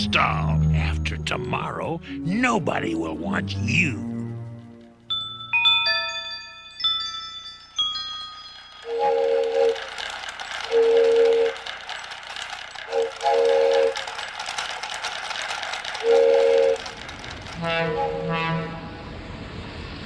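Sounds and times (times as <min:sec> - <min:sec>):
train rolling rumble: 0:00.0 - 0:20.0
steam train chuffing: 0:07.9 - 0:20.0
train horn: 0:08.9 - 0:09.9, 0:16.0 - 0:16.8, 0:17.6 - 0:19.1
train whistle tooting: 0:08.9 - 0:09.9, 0:12.9 - 0:14.0, 0:16.0 - 0:16.9, 0:17.6 - 0:19.1.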